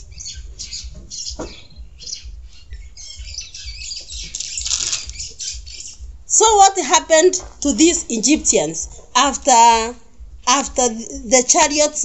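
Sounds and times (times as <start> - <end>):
birds chirping: 0.0 - 6.7
low steady rumble: 0.0 - 11.7.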